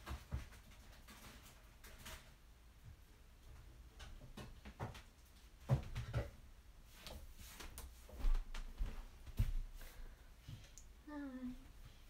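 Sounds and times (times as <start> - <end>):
knocks of objects being handled: 3.6 - 6.4.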